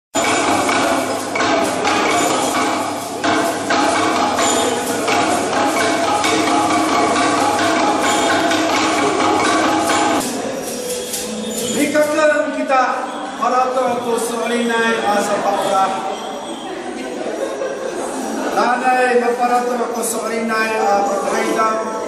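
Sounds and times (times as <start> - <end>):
bamboo tubes knocking on floor: 0.2 - 10.3
music with long held notes: 0.2 - 10.4.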